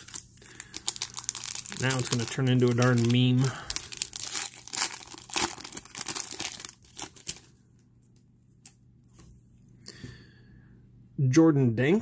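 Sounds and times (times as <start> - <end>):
wrapper tearing and crinkling: 0.0 - 7.5.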